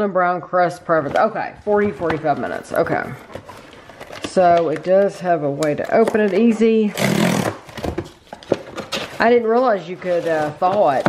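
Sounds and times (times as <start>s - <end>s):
cardboard box ripping open: 7.0s - 7.9s.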